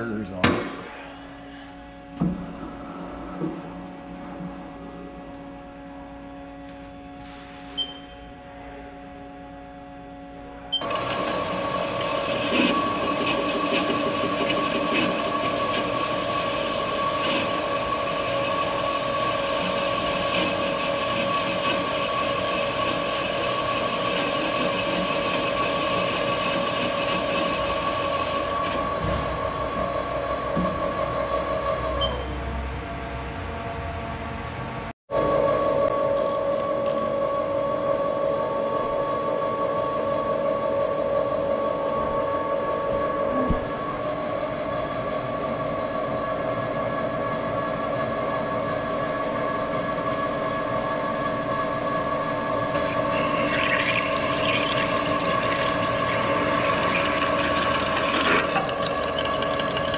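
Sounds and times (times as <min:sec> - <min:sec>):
lathe mechanical hum and whine: 0:00.0 - 0:59.9.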